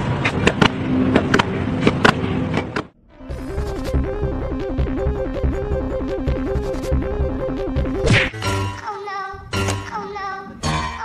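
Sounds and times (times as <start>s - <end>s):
outdoor background noise: 0.0s - 4.2s.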